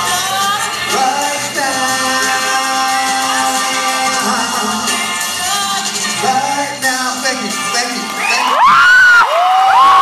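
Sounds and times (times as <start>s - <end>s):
crowd cheering and screaming: 8.0s - 10.0s.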